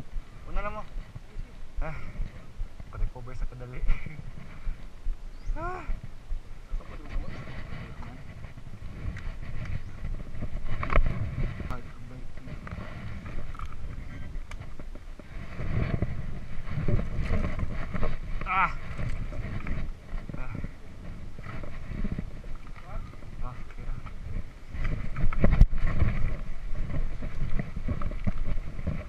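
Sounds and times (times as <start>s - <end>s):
bike tyres rattling over rocks: 6.7s - 29.0s.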